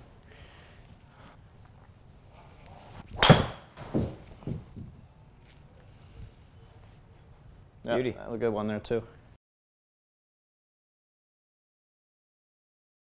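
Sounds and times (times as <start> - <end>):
golf driver striking ball: 3.2 - 4.0.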